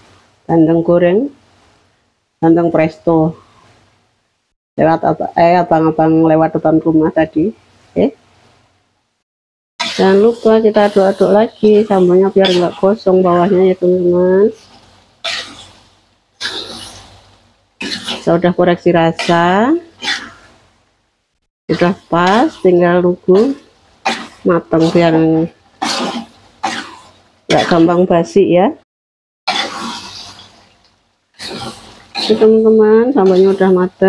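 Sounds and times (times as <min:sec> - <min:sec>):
sauce sizzling in a wok: 0:09.8 - 0:20.6, 0:29.5 - 0:30.8, 0:31.4 - 0:34.0
spatula stirring in a wok: 0:09.8 - 0:20.6, 0:21.7 - 0:28.0, 0:29.5 - 0:34.0.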